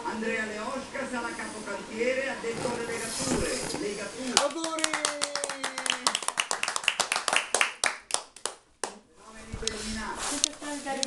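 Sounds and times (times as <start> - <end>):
group clapping: 4.3 - 9.0.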